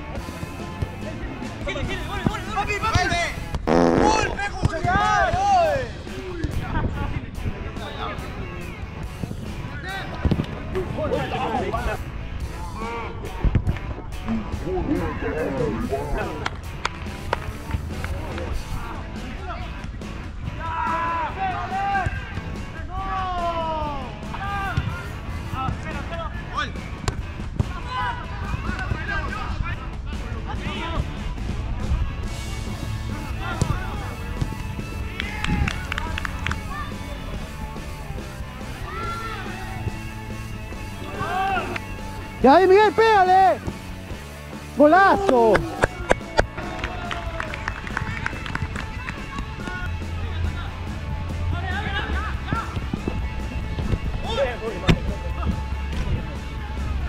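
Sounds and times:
players calling and shouting: 0.0s - 6.6s, 7.7s - 31.4s, 32.2s - 57.0s
background music: 0.0s - 57.0s.

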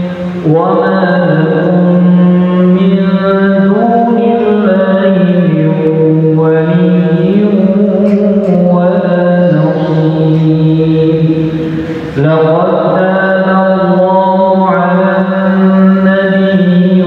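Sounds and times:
man chanting melodic recitation: 0.0s - 17.0s.

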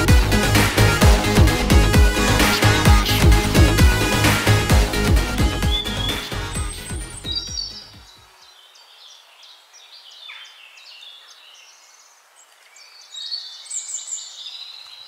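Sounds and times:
theme music: 0.0s - 8.1s
small birds chirping: 5.5s - 15.0s.

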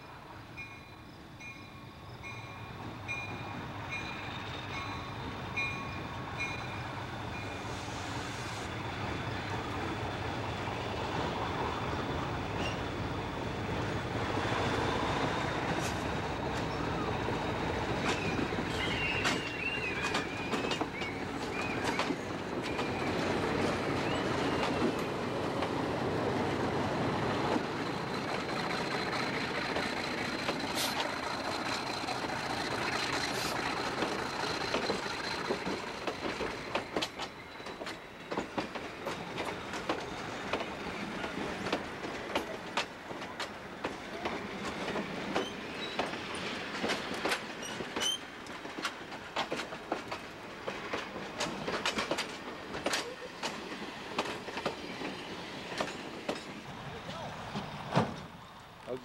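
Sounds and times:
diesel locomotive passing: 0.0s - 59.0s
high wheel squeal: 12.5s - 13.0s, 16.4s - 23.3s, 47.6s - 48.4s
wheels clicking over rail joints: 17.9s - 25.8s, 27.4s - 59.0s.

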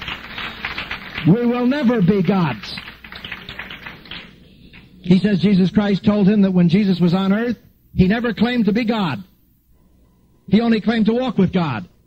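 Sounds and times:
congregation clapping: 0.0s - 4.9s.

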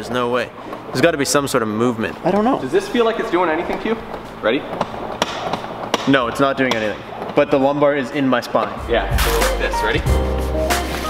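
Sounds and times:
person speaking: 0.0s - 4.7s.

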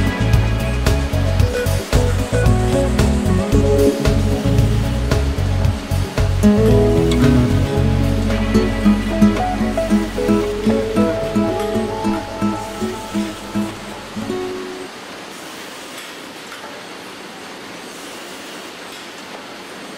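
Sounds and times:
plucked string music over drone: 0.0s - 14.9s
steady machinery noise: 0.0s - 16.1s.

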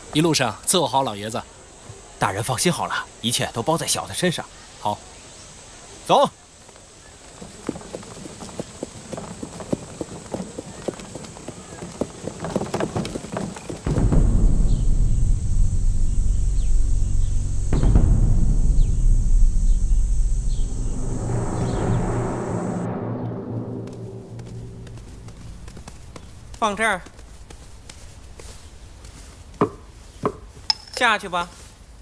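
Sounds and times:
horse hooves on stone paving: 6.6s - 14.3s, 24.4s - 31.1s.

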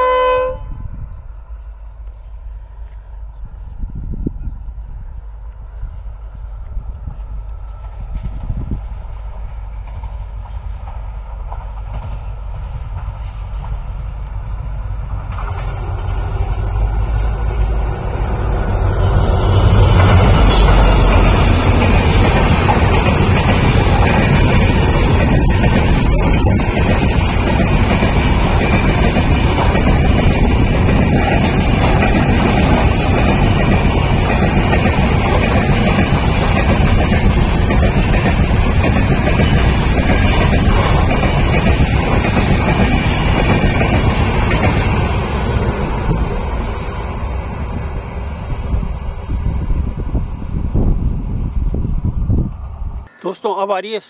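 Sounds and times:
diesel locomotive rumble: 0.0s - 53.1s
train wheel noise and rail clatter: 0.9s - 53.1s.

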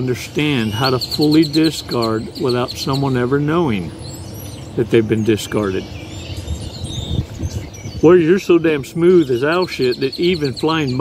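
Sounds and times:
birds chirping faintly: 0.0s - 11.0s.

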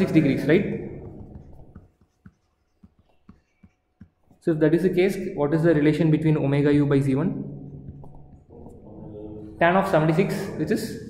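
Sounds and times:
stylus tapping on tablet screen: 0.0s - 5.2s, 7.7s - 8.8s.

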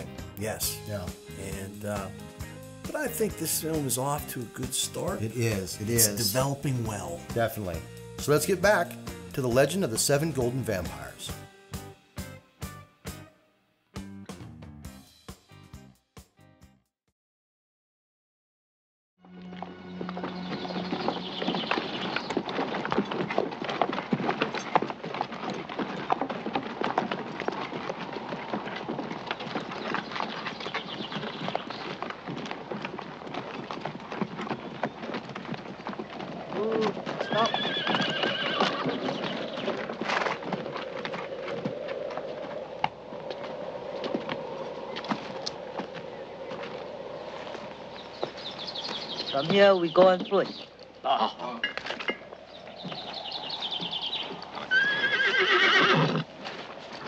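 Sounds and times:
horse hooves clip-clopping: 0.0s - 12.8s, 19.4s - 57.0s
horse whinnying: 34.4s - 41.3s, 53.2s - 56.4s.

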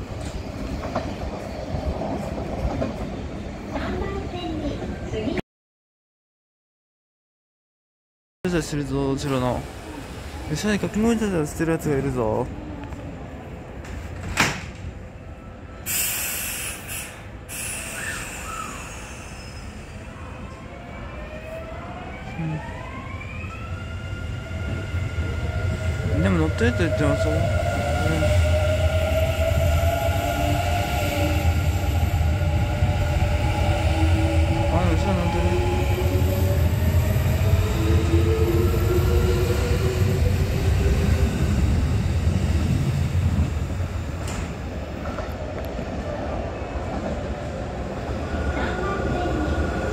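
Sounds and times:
train approaching: 14.8s - 49.9s
electric train passing: 15.0s - 49.9s.

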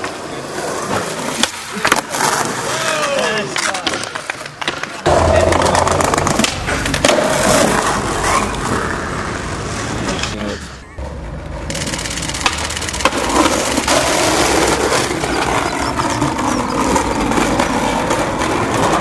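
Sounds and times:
skateboard clacking on ground: 0.0s - 9.0s, 11.0s - 19.0s
skateboard wheels rolling on concrete: 0.0s - 19.0s.

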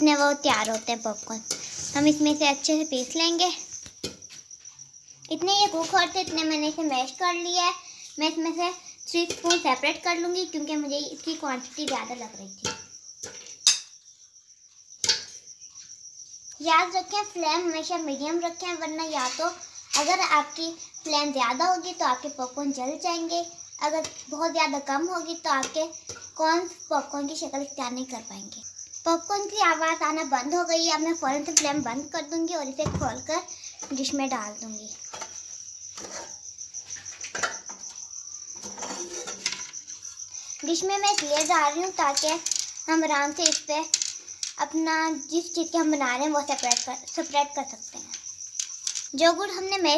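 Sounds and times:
cricket trilling: 0.0s - 49.9s
metal pan and lid clattering: 12.6s - 13.9s, 37.2s - 37.8s, 38.6s - 39.8s.

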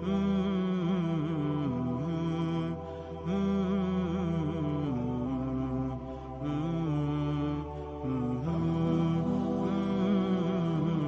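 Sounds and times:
person singing long wavering notes: 0.0s - 11.0s
steady low drone: 0.0s - 11.0s.

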